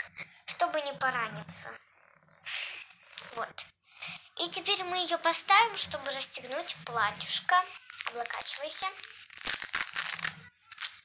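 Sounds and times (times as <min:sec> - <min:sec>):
fabric rustling and crinkling: 0:07.5 - 0:11.0.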